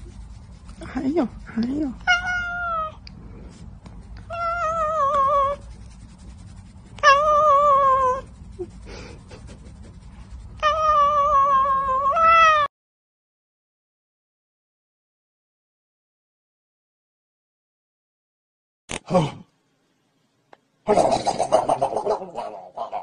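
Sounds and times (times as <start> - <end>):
cat meowing loudly: 2.1 - 3.0.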